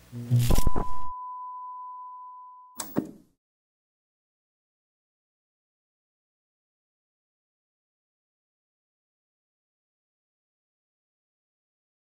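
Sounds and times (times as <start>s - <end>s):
electronic test tone: 0.0s - 2.9s.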